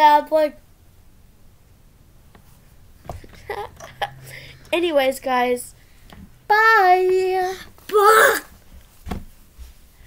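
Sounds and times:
child shouting: 6.5s - 8.5s.

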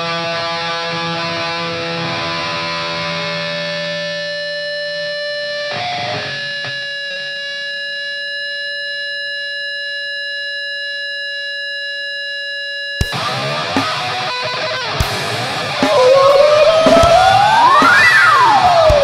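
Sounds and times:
distorted electric guitar chords: 0.0s - 8.0s, 13.0s - 19.0s.

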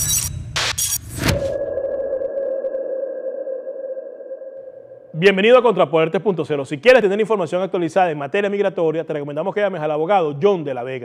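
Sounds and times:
steady synthetic tone: 1.0s - 5.8s.

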